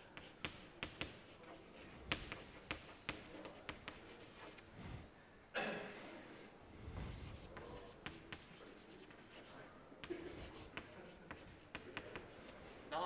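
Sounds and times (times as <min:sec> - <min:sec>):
chalk scratching on blackboard: 0:00.0 - 0:04.6, 0:06.9 - 0:12.6
chalk tapping on board: 0:00.0 - 0:04.6, 0:07.1 - 0:12.5.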